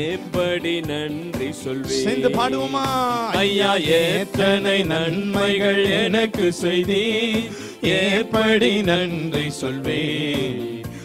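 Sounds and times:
instrumental backing music: 0.0 - 11.0
men singing into microphones: 0.0 - 11.0.

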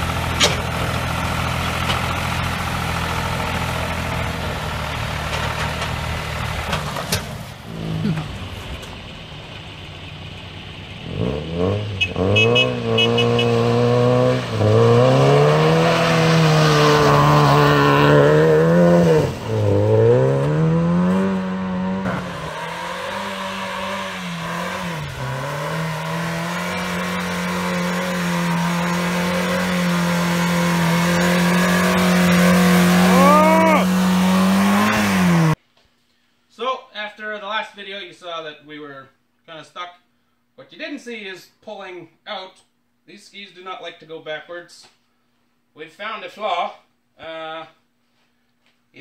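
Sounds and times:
car engine revving: 0.0 - 35.6
short rising squeals: 11.6 - 35.6.

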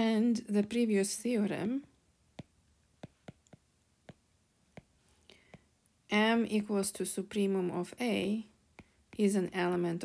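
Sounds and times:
stylus tapping on glass screen: 2.4 - 5.7.

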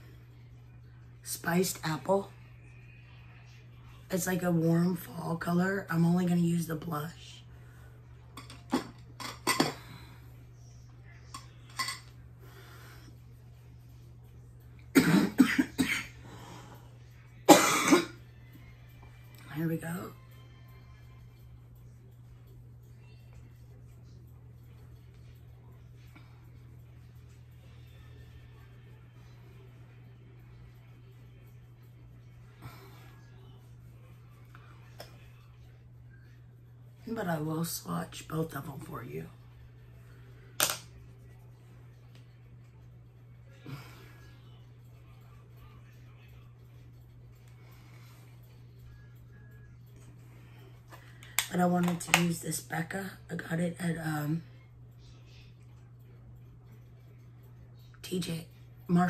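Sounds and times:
low electrical hum: 0.0 - 59.0
woman coughing: 14.9 - 16.2, 17.5 - 18.2.

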